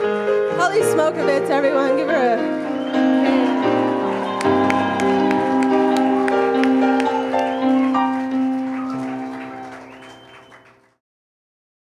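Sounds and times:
live music held chords: 0.0s - 10.8s
audience applause: 2.4s - 11.0s.

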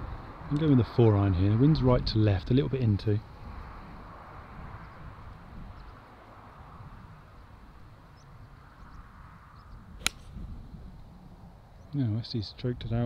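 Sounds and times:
golf club striking ball: 10.0s - 10.5s.

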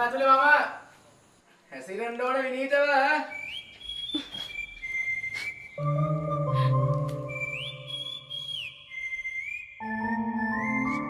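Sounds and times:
high sliding whistle-like tone: 4.6s - 11.0s.

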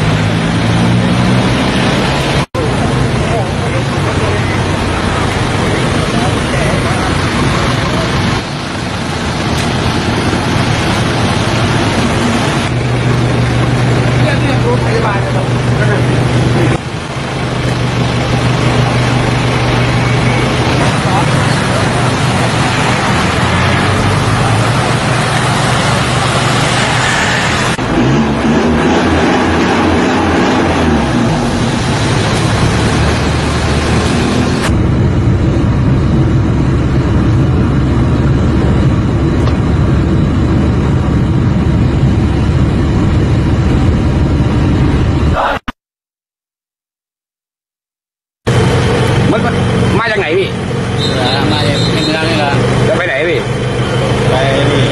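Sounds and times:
road traffic engines humming: 0.0s - 45.5s, 48.5s - 54.9s.

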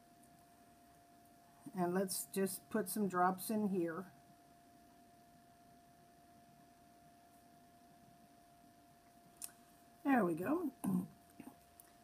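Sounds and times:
thin steady hum: 0.0s - 12.0s.

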